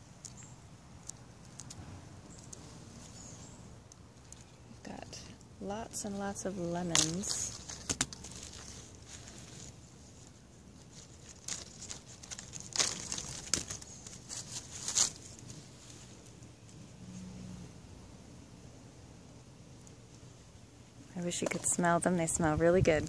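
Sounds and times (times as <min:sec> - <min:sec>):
rustling and crackling of handling: 0:00.0 - 0:17.3.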